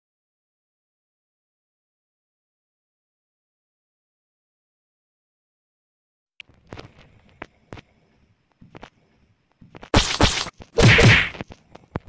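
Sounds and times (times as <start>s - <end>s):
whack sound effects: 10.0s - 11.4s.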